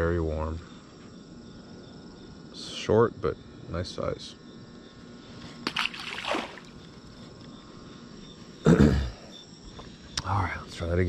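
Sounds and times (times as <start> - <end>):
insects chirring: 0.0 - 11.0
person clearing throat: 8.6 - 9.2.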